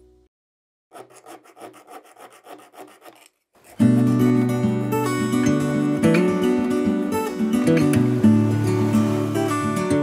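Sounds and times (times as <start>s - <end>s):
needle file rasping on metal: 0.9s - 4.2s
acoustic guitar music: 3.8s - 10.0s.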